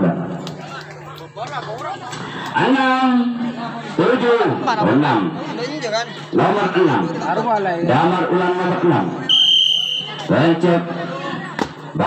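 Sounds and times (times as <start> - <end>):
spectators chattering and calling out: 0.0 - 12.0.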